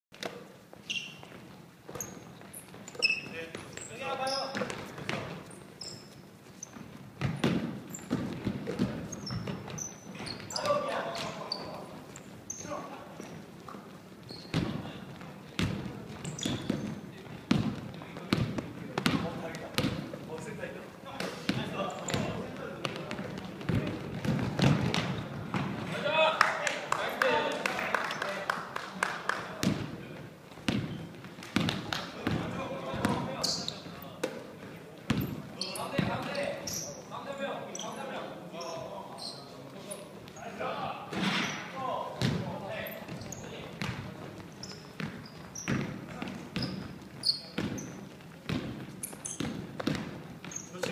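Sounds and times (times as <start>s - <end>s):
basketball bouncing on wooden floor: 6.7s - 10.4s, 14.3s - 20.5s, 21.4s - 25.8s, 29.6s - 33.3s, 35.1s - 36.3s, 42.2s - 42.5s, 43.1s - 50.9s.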